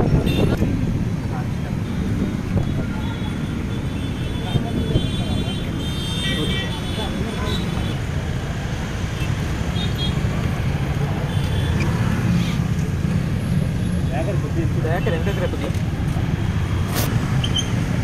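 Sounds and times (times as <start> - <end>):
road traffic rumble: 0.0 - 18.0
people talking: 4.4 - 8.0, 14.1 - 15.8.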